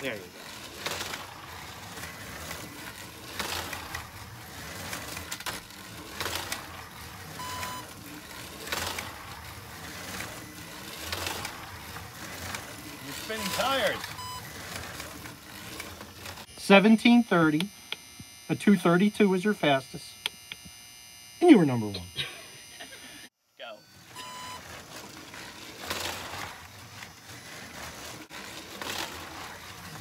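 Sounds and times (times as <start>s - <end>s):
slot car passing: 0.0s - 16.5s
short electronic beep: 13.4s - 14.5s, 23.6s - 24.6s.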